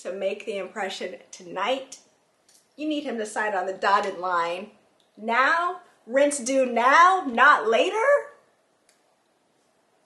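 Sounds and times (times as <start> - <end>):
woman speaking: 0.0 - 2.1, 2.8 - 8.5.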